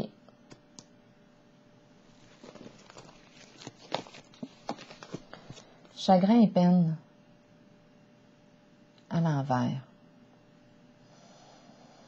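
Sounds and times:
card rustles: 0:02.1 - 0:05.7.

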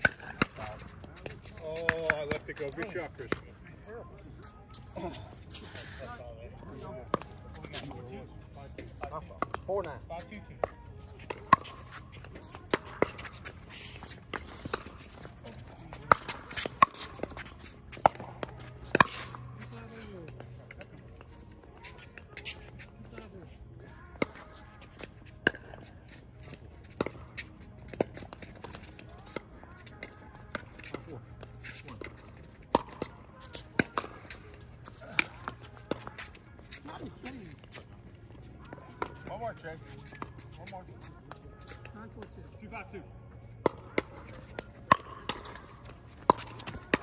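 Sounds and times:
faint voices: 0:00.2 - 0:09.3.

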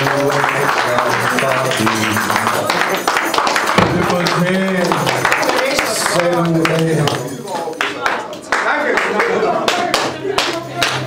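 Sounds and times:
sharp hand-clap-like strikes: 0:02.0 - 0:05.8.

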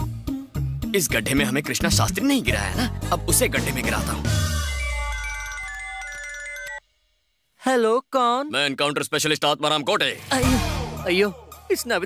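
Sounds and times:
mobile phone ringtone: 0:04.3 - 0:06.8.

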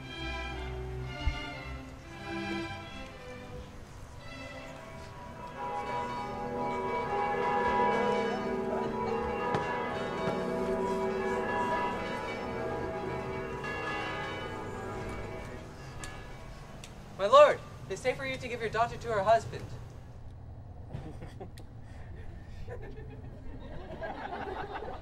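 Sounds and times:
bells ringing in a peal: 0:00.0 - 0:17.6.

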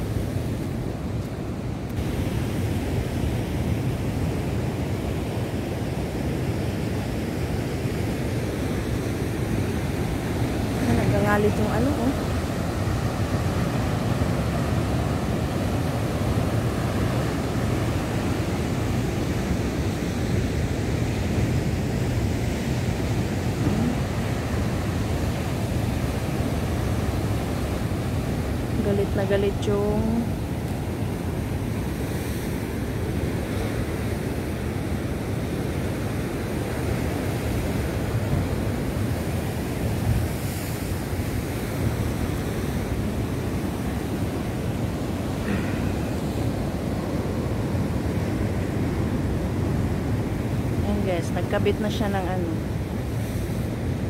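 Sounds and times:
heavy surf breaking: 0:07.7 - 0:54.0.

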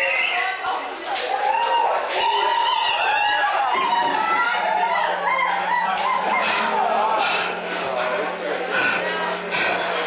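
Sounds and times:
voice wailing: 0:05.2 - 0:09.9
steady low hum: 0:05.4 - 0:10.0.

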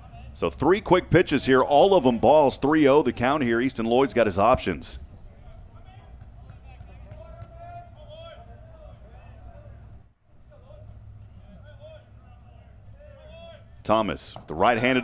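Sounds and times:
steady low hum: 0:00.0 - 0:15.0.

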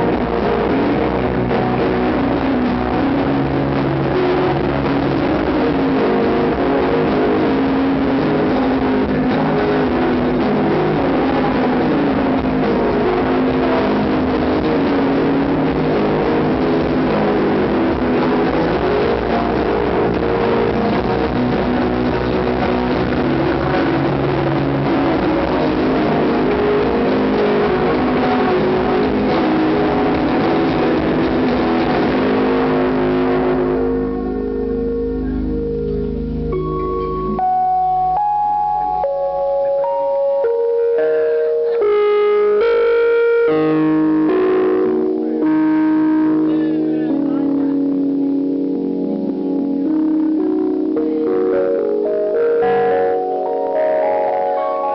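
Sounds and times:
held notes over low drone: 0:00.0 - 0:54.9
live rock band playing: 0:00.0 - 0:54.9.

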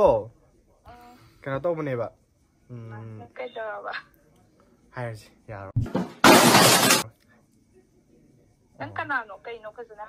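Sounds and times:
loud shattering crash: 0:05.8 - 0:07.1.

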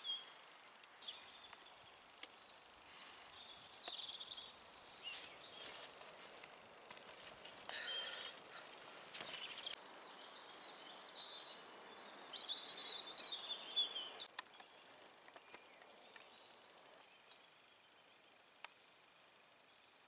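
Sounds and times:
small birds singing: 0:00.0 - 0:20.0
rustling and clicking handling noise: 0:05.1 - 0:07.7, 0:08.8 - 0:09.8.

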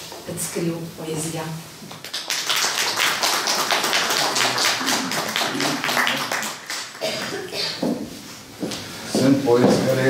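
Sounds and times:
audience applauding: 0:02.0 - 0:07.5.

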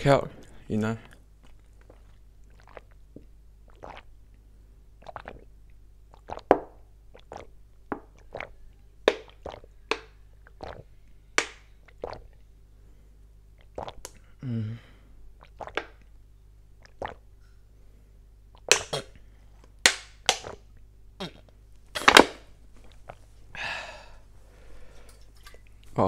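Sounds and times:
man gulping water: 0:01.0 - 0:04.4, 0:05.0 - 0:10.9, 0:11.8 - 0:12.4, 0:13.6 - 0:16.2, 0:16.8 - 0:17.3, 0:18.5 - 0:19.3, 0:21.2 - 0:22.2.

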